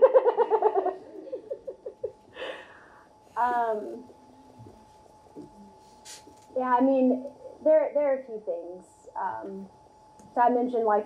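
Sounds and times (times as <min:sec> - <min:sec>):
woman laughing: 0:00.0 - 0:02.6.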